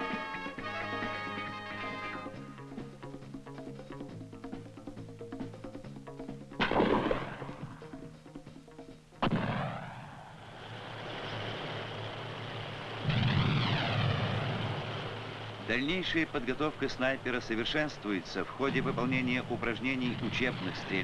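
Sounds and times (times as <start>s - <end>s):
background music: 0.0s - 10.3s, 14.9s - 21.0s
gunshot: 6.6s - 7.8s, 9.2s - 10.3s, 13.1s - 14.6s
heavy blast with rumble: 9.2s - 15.7s
rushing noise with high whine: 10.0s - 21.0s.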